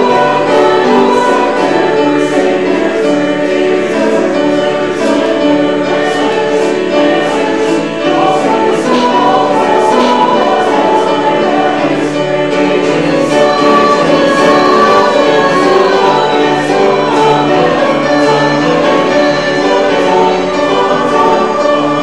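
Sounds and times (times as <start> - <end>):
group singing a hymn: 0.0 - 22.0.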